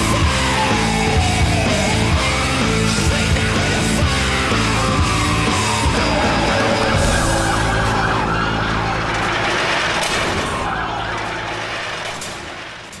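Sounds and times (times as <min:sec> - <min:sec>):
heavy rock music: 0:00.0 - 0:12.3.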